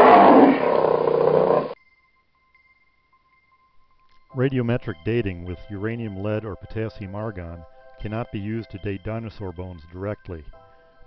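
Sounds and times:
dinosaur roar: 0.0 - 1.8.

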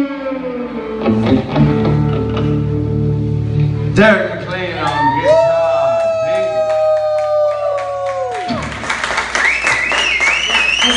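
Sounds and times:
high wavering whoop: 4.8 - 8.7
audience cheering and clapping: 4.8 - 10.9.

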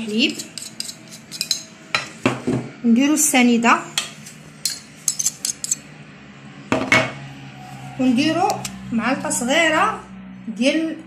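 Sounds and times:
teaspoon clinking on saucepan: 0.3 - 1.7, 4.0 - 5.8.

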